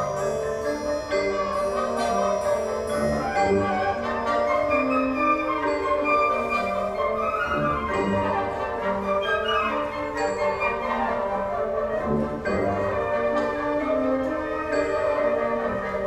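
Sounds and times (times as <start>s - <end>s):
wind band playing chords: 0.0s - 16.0s.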